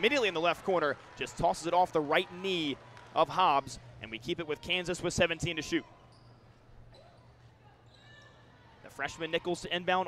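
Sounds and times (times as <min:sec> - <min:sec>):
faint arena background hum: 0:00.0 - 0:10.0.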